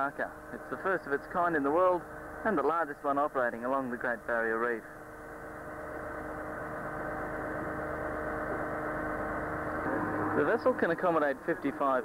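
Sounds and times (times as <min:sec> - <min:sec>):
diesel engine and pumps droning: 0:00.0 - 0:12.0.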